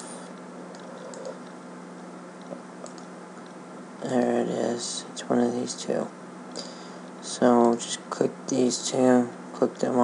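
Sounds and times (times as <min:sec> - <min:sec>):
steady low hum: 0:00.0 - 0:10.0
computer mouse clicks: 0:00.7 - 0:01.6, 0:02.4 - 0:03.1.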